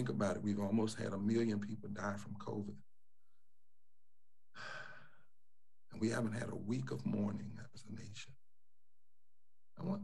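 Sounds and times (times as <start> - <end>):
man breathing: 4.5 - 5.4.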